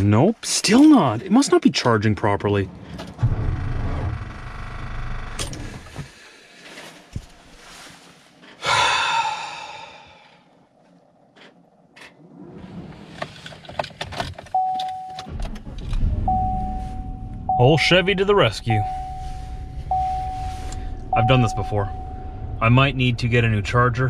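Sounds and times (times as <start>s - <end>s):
low rumble: 15.3s - 24.0s
steady electronic chime: 16.3s - 23.3s.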